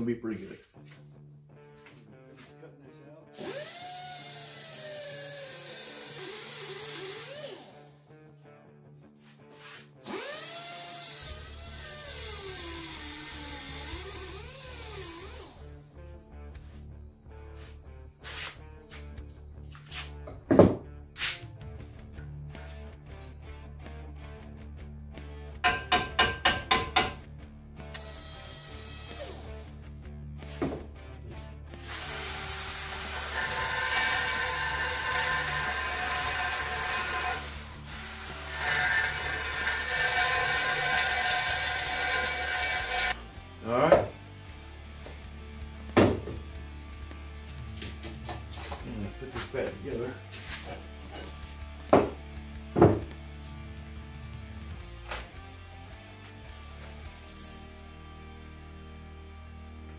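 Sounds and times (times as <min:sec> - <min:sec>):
cordless drill drilling into steel: 0:03.4 - 0:07.9, 0:10.1 - 0:15.7, 0:28.0 - 0:29.7, 0:31.8 - 0:43.2
taps on steel: 0:25.6 - 0:27.2
wavering tool whine: 0:27.9 - 0:29.8.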